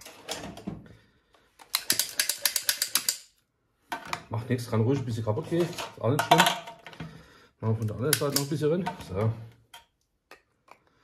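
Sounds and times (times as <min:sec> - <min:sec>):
filling gun mechanism clicking: 0:01.6 - 0:03.3.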